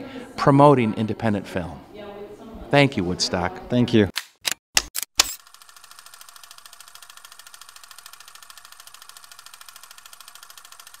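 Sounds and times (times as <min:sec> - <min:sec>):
sharp click: 0:04.2 - 0:05.4
rapid mechanical clatter: 0:05.3 - 0:11.0.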